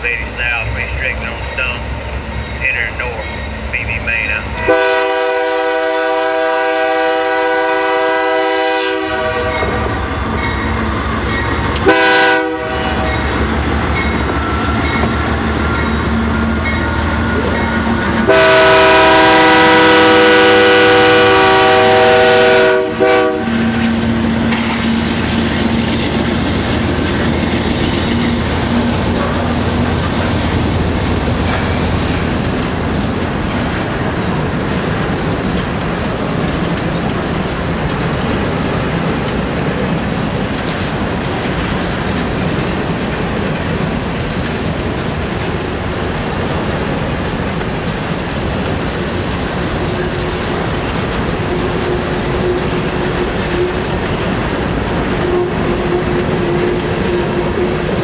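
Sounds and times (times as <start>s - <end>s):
rail cars clickety-clack: 0.0s - 58.0s
locomotive horn blasts: 4.4s - 9.9s, 11.8s - 13.3s, 18.2s - 23.8s, 55.2s - 58.0s.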